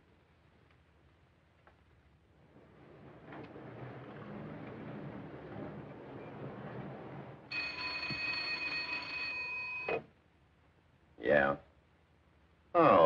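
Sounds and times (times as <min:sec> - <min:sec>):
low background noise: 0:00.0 - 0:13.0
desk telephone ringing: 0:07.5 - 0:10.1.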